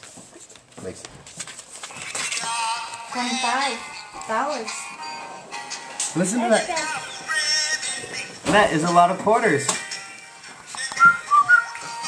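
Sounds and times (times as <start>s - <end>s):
musical greeting card tune: 2.0s - 12.0s.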